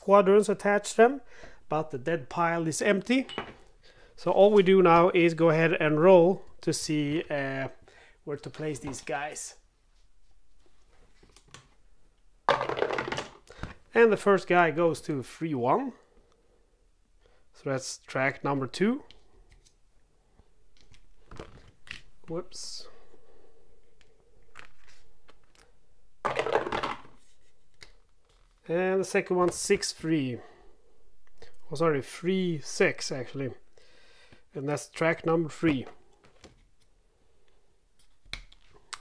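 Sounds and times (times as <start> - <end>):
dice rattling in tray: 12.5 - 13.4, 26.2 - 27.2.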